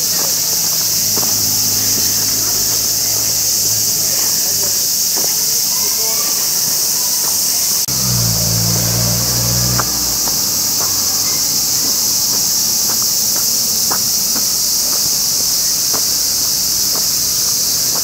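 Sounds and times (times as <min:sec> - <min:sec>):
cicadas droning: 0:00.0 - 0:18.0
low hum: 0:00.4 - 0:05.0, 0:07.9 - 0:12.6.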